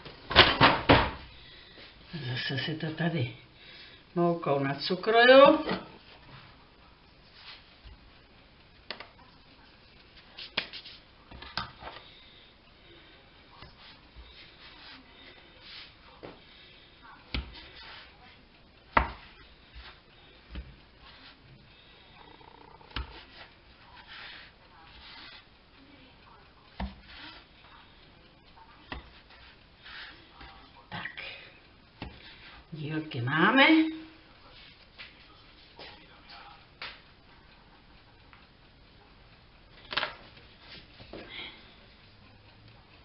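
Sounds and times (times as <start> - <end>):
hands rubbing dough: 7.2 - 8.0, 9.6 - 12.1, 13.6 - 16.6, 17.3 - 22.0, 22.9 - 25.5, 26.7 - 27.8, 28.7 - 30.8.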